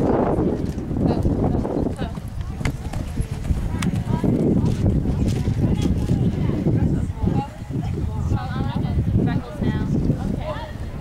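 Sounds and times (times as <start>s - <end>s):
horse hoofbeats on sand: 1.9s - 6.3s.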